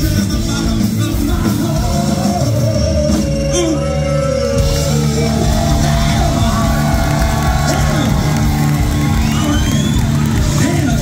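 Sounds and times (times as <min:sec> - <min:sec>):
punk rock band with amplified guitars: 0:00.0 - 0:11.0
crowd cheering and whooping: 0:03.3 - 0:11.0.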